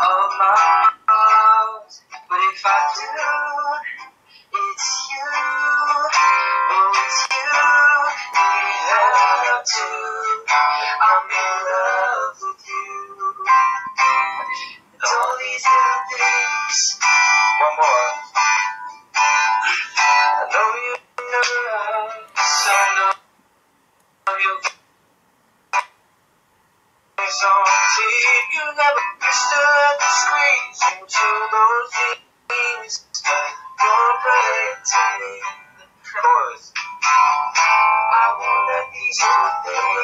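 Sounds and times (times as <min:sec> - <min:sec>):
man singing with acoustic guitar: 0:00.0 - 0:23.2, 0:24.2 - 0:24.7, 0:27.2 - 0:40.0.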